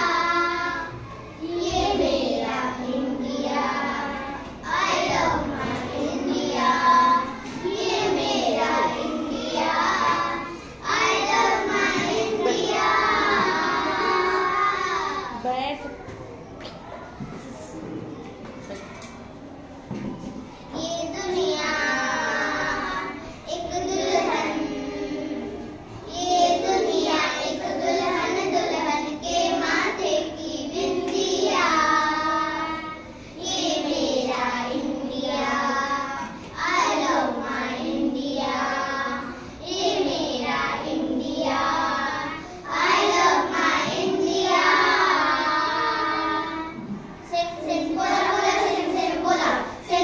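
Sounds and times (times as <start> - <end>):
children singing in unison: 0.0 - 15.4, 20.0 - 50.0.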